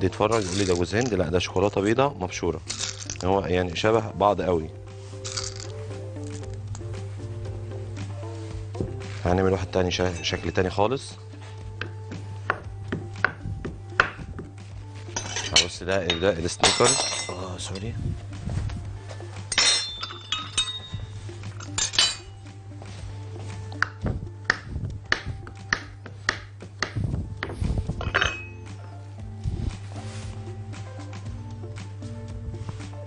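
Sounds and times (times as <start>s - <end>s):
background music: 0.0s - 33.0s
cutlery and dishes clinking: 0.3s - 1.2s, 15.1s - 17.9s, 19.5s - 22.4s, 28.0s - 28.8s.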